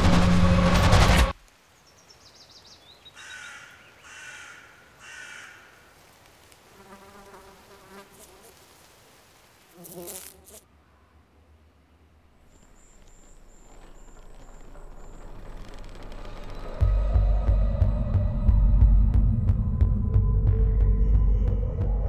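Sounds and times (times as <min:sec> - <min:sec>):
crow cawing: 0:03.2 - 0:05.9.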